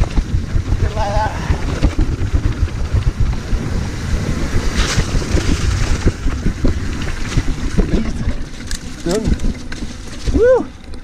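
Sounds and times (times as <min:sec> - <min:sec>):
bike rattling and knocking: 0:00.0 - 0:11.0
tyres rumbling on stones: 0:00.0 - 0:11.0
wind buffeting microphone: 0:00.0 - 0:11.0.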